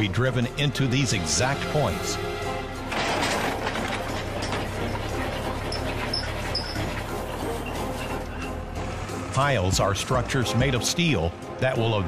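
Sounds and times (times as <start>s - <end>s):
tractor engine rumbling: 0.0s - 11.9s
background music: 0.0s - 12.0s.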